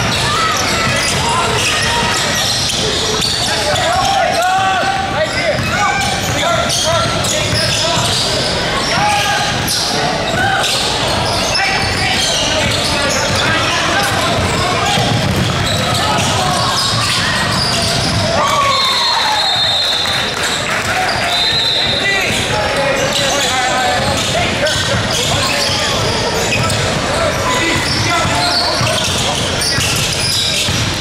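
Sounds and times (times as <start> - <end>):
people shouting: 0.0 - 6.2
crowd din: 0.0 - 31.0
basketball bouncing on court: 4.8 - 8.3, 11.8 - 18.6, 24.0 - 31.0.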